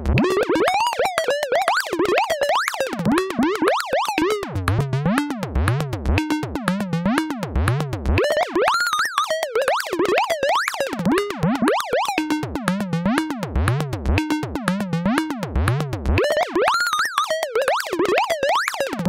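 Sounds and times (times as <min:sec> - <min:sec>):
gliding bit synth sequence: 0:00.2 - 0:02.9.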